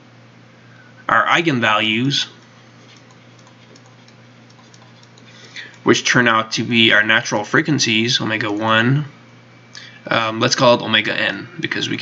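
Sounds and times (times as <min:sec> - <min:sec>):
low steady hum: 0:00.0 - 0:12.0
stylus tapping on screen: 0:02.4 - 0:05.8.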